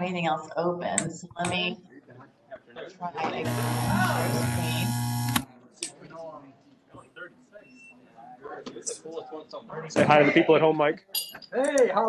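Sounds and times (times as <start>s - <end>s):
faint broken voices: 0.0s - 10.8s
loud electronic buzz: 3.2s - 5.4s
tune-like tone: 3.4s - 5.4s.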